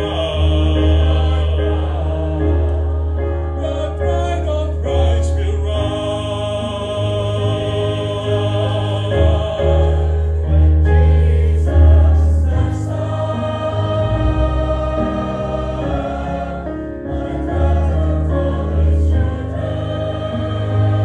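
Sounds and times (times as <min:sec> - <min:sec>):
mixed choir singing: 0:00.0 - 0:21.0.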